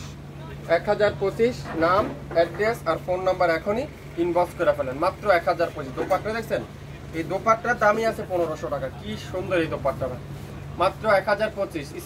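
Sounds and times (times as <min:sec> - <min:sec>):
man talking: 0:00.0 - 0:12.0
steady low hum: 0:00.0 - 0:12.0.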